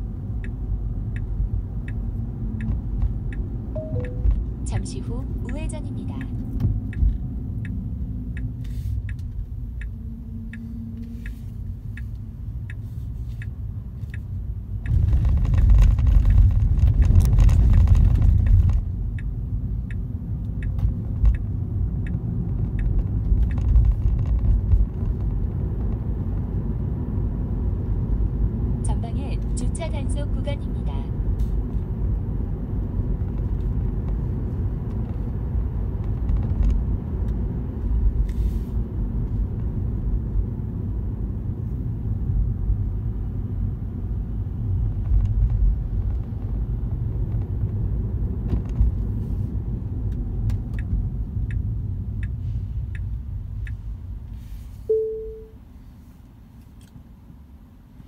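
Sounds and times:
road and tyre rumble: 0:00.0 - 0:58.0.

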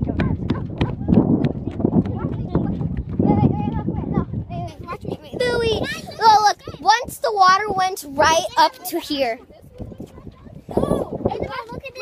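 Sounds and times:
people talking: 0:03.3 - 0:12.0.

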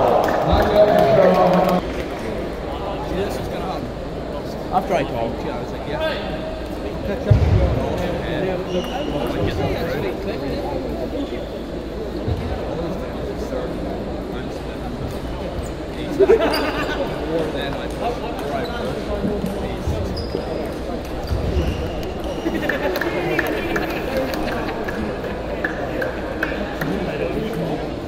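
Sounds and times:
chatter of voices in hall: 0:00.0 - 0:28.0.

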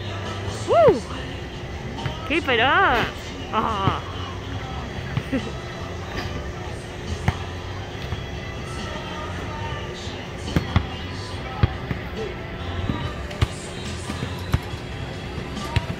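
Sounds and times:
basketballs bouncing on asphalt: 0:12.8 - 0:14.8.

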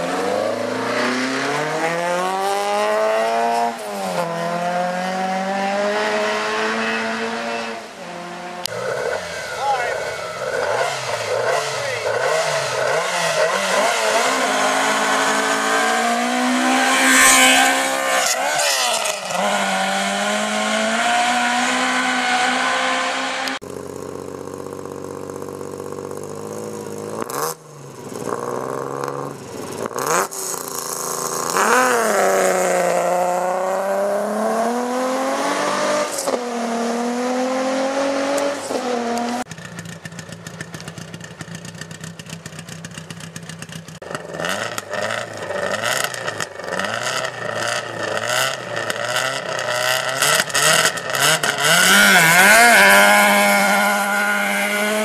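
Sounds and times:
rally cars accelerating: 0:00.0 - 0:23.6, 0:26.2 - 0:39.5, 0:44.1 - 0:55.0.

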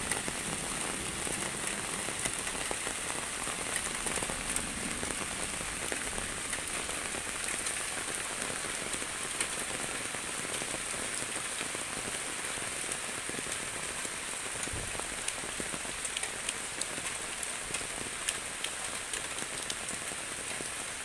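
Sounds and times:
raindrops ticking close by: 0:00.0 - 0:21.0
steady rain: 0:00.0 - 0:21.0.

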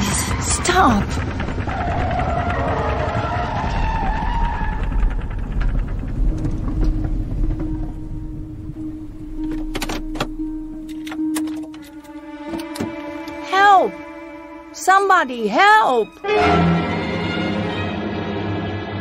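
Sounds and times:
car swerving: 0:00.0 - 0:14.8
dramatic music: 0:00.0 - 0:19.0
loud wavering noise: 0:00.0 - 0:19.0
low rumble: 0:00.0 - 0:19.0
steady held tone: 0:00.1 - 0:17.3.

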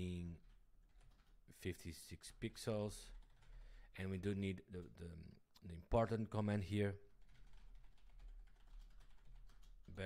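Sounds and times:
typing on a keyboard: 0:00.0 - 0:03.8, 0:07.1 - 0:10.0.

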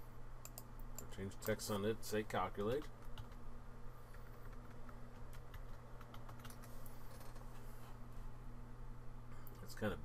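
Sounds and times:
keyboard typing clicks: 0:00.4 - 0:01.6, 0:02.6 - 0:03.4, 0:04.1 - 0:07.4.

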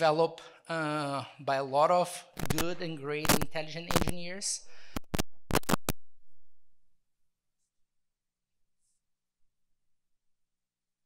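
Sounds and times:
sharp clicks: 0:02.4 - 0:06.0.

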